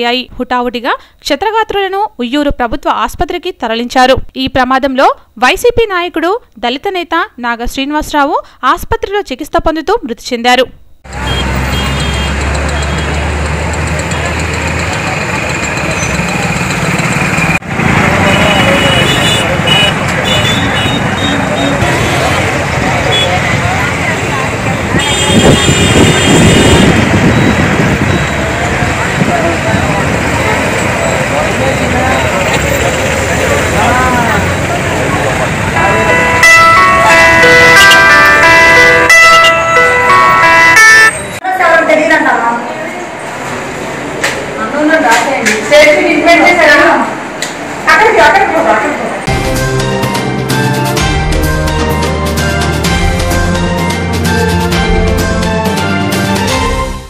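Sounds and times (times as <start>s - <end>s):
road traffic noise: 11.0s - 57.0s
vehicle horns: 11.1s - 32.9s, 34.7s - 41.4s
many voices talking: 18.2s - 25.0s, 28.3s - 37.5s.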